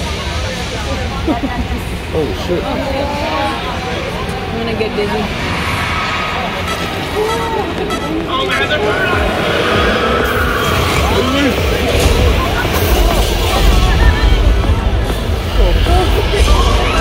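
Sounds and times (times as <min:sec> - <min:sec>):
indistinct chatter of voices: 0:00.0 - 0:17.0
moving vehicle rumble: 0:00.0 - 0:17.0.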